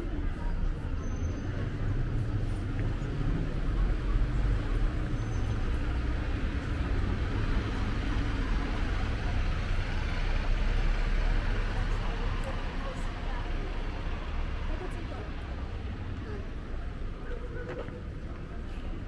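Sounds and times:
bus moving: 0.0s - 19.0s
low rumble of vehicles: 0.0s - 19.0s
passers-by talking: 0.0s - 19.0s.

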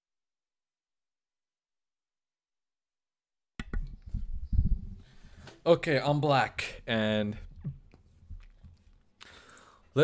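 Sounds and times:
microphone being handled: 3.6s - 5.6s.

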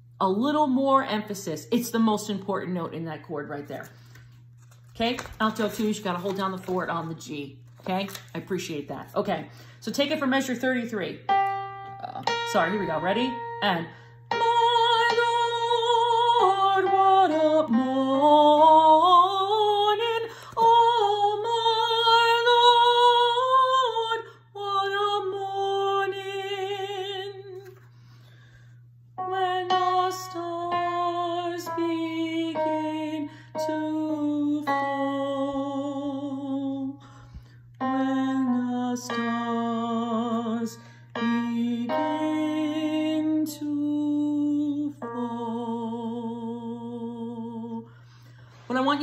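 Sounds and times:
digital piano: 11.2s - 19.0s, 37.8s - 43.4s
woman singing with vibrato: 11.9s - 27.8s, 29.2s - 37.1s, 37.8s - 48.0s.

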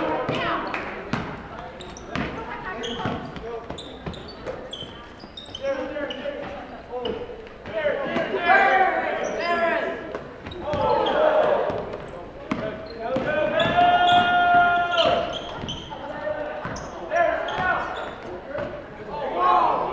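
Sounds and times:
voices echoing in gym: 0.0s - 19.9s
short high squeaks: 2.8s - 6.2s, 13.6s - 16.0s.

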